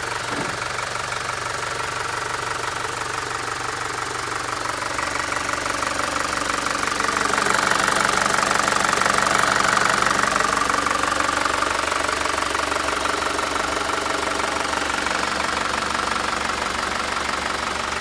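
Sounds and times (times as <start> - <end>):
diesel engine idling: 0.0 - 18.0.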